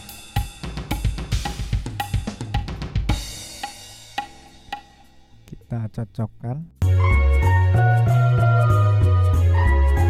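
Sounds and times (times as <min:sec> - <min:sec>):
sampled drum kit playing: 0:00.0 - 0:05.8.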